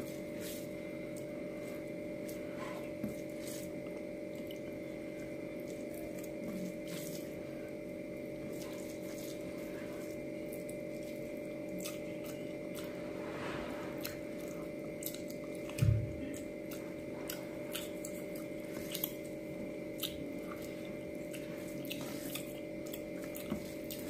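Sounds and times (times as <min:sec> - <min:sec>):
steady background hum: 0:00.0 - 0:24.0
wet chewing with mouth clicks: 0:00.1 - 0:13.0, 0:14.0 - 0:24.0.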